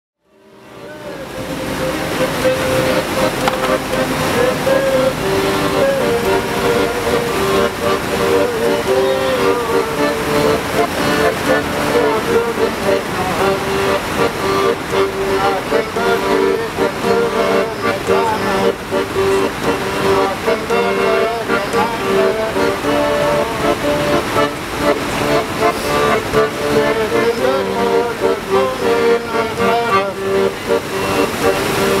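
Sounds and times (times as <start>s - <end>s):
accordion playing a tune: 0.3s - 32.0s.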